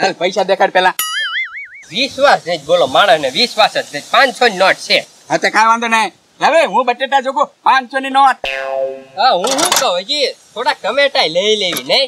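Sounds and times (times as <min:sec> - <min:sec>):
men talking: 0:00.0 - 0:12.0
cartoon boing sound effect: 0:01.0 - 0:01.9, 0:08.4 - 0:09.3.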